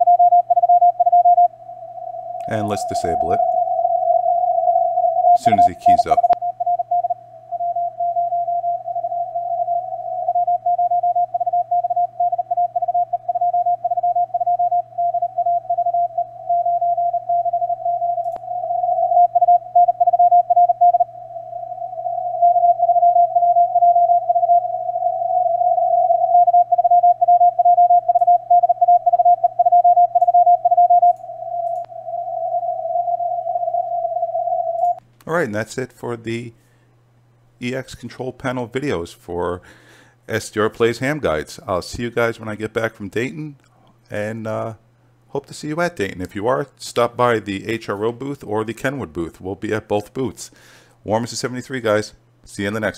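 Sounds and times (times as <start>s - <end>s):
morse code beeps: 0.0s - 1.5s, 2.4s - 21.1s, 26.0s - 35.0s
faint low hum: 0.0s - 52.9s.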